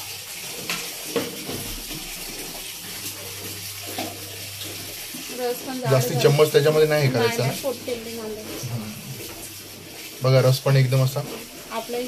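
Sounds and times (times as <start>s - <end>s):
running water: 0.0s - 12.0s.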